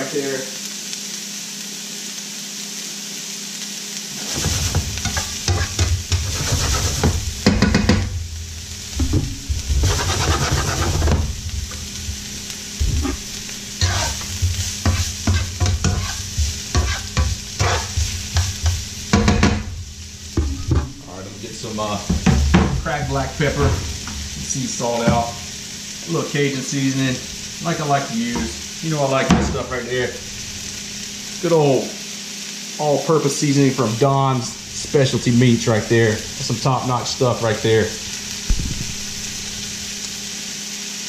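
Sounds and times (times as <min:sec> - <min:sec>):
vegetables sizzling in a frying pan: 0:00.0 - 0:41.0
pan shaken rattling vegetables: 0:04.2 - 0:07.9, 0:09.0 - 0:12.2.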